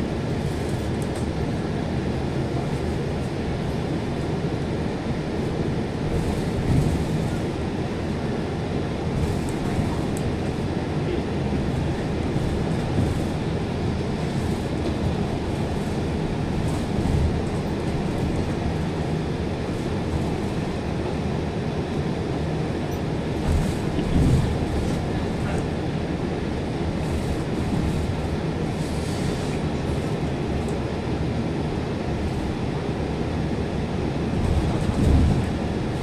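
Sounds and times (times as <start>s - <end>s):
bus engine and road noise: 0.0s - 36.0s.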